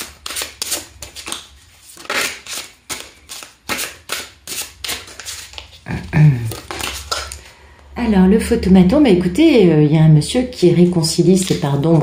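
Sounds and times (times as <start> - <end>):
cards being shuffled by hand: 0.0 - 7.5.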